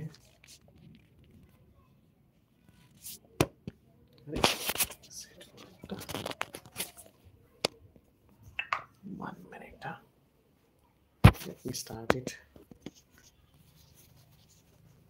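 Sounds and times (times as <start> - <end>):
rubbing and rustling on microphone: 0.0 - 1.6, 2.6 - 3.2, 4.3 - 7.2, 11.2 - 15.0.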